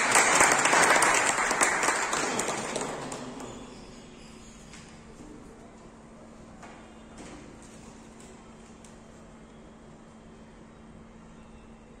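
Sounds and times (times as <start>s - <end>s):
people applauding: 0.0s - 3.8s.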